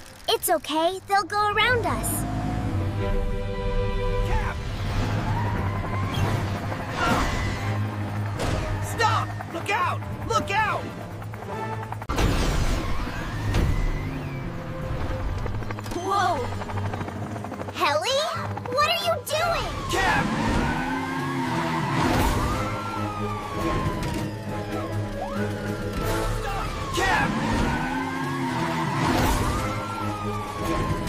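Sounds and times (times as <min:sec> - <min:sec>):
car tyres skidding and squealing: 0:04.2 - 0:09.0, 0:12.4 - 0:14.8, 0:19.9 - 0:24.2, 0:25.3 - 0:30.0.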